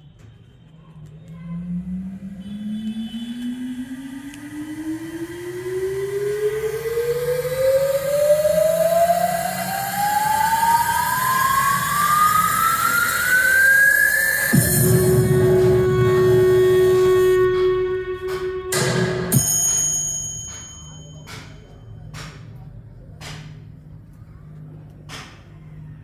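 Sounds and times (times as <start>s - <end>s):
electronic riser tone rising: 1.6s - 19.5s
rising noise: 1.6s - 19.6s.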